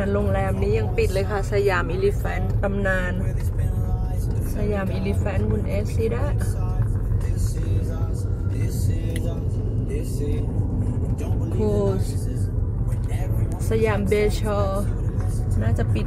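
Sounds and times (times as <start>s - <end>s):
woman talking: 0.0s - 3.3s, 4.5s - 6.5s, 11.5s - 12.2s, 13.6s - 14.9s, 15.6s - 16.0s
car engine and tyres rumbling: 0.0s - 16.0s.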